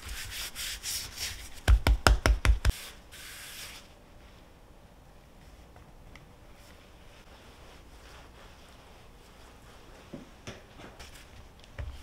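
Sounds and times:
hands patting dough: 1.5 - 2.8
hands rubbing dough: 6.6 - 10.4.

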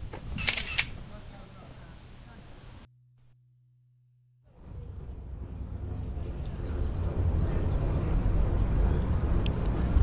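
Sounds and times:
bike road noise: 4.5 - 10.0
bird chirping: 6.4 - 9.6.

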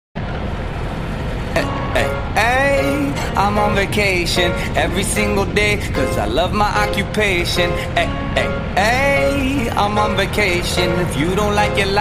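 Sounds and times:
wind noise: 0.2 - 12.0
musical notes: 1.6 - 12.0.

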